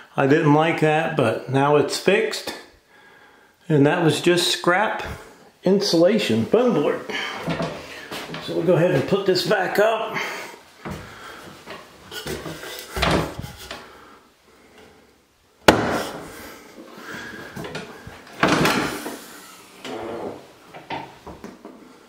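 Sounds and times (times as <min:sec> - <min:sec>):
wooden ladder knocks and creaks: 0:07.3 - 0:08.6, 0:10.8 - 0:13.8, 0:17.5 - 0:19.2.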